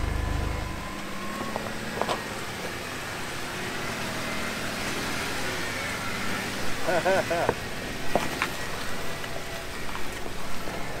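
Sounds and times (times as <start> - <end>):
low engine noise: 0.0 - 11.0
stones crackling under tyres: 0.9 - 2.8, 7.4 - 11.0.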